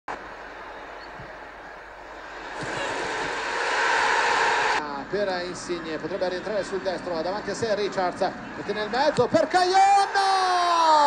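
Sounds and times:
stadium crowd noise: 0.1 - 11.0.

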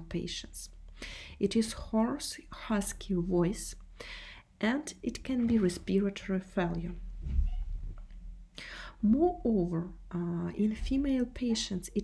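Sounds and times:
low rumble on microphone: 6.9 - 8.5.

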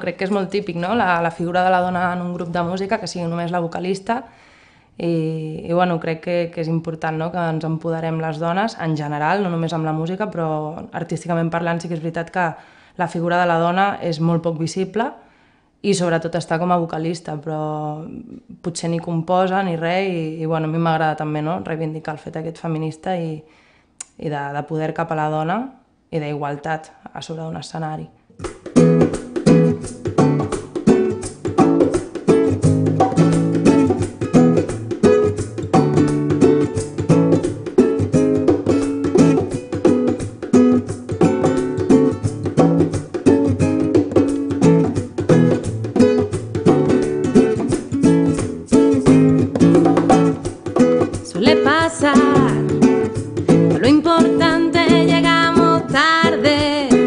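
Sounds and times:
acoustic guitar plucking: 0.0 - 3.7, 28.4 - 57.0
woman singing: 51.2 - 57.0.

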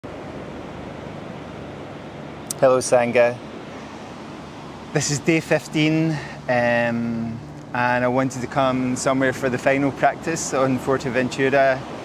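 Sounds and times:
ocean surf breaking on beach: 7.8 - 12.0.

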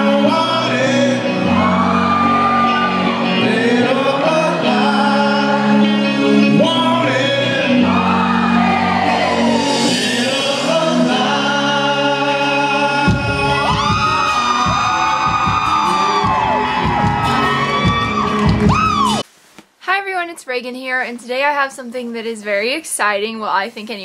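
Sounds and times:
man singing into microphone: 0.0 - 14.9
live music: 0.0 - 19.2
crowd whooping and shouting: 0.6 - 6.2, 7.5 - 10.7, 13.0 - 19.2.

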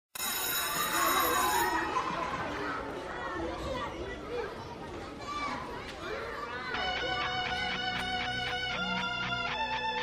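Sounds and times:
high bell-like ringing: 0.2 - 2.0
indistinct murmuring voices: 0.8 - 10.0.

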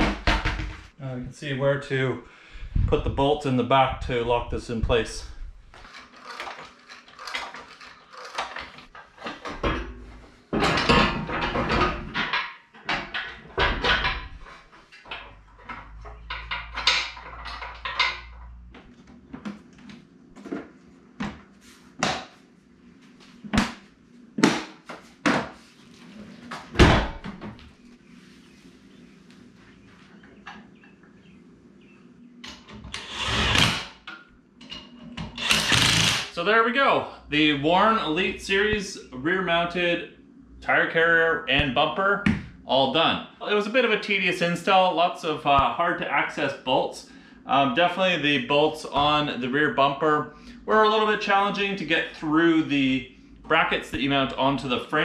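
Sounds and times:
faint steady hum: 1.0 - 55.0
heavy steel parts clanking: 5.8 - 18.6
handheld power tool running: 35.4 - 36.3.

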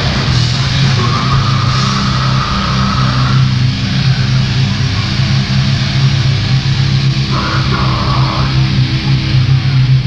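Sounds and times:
distorted guitar and bass drone: 0.0 - 10.0.

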